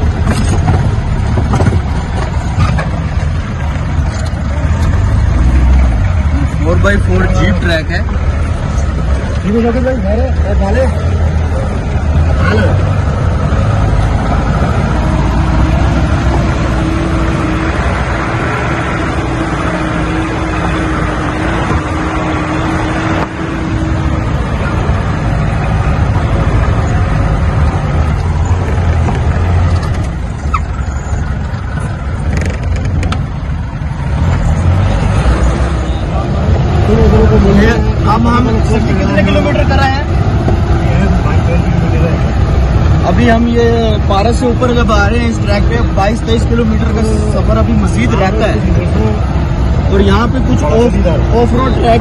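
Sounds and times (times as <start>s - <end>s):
jeep engine running: 0.0s - 52.0s
road noise on gravel: 0.0s - 52.0s.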